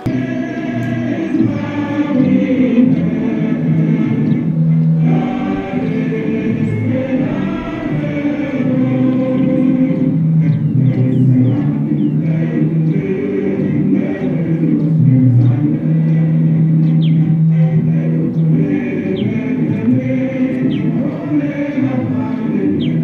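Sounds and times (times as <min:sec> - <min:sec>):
choir singing: 0:00.0 - 0:23.0.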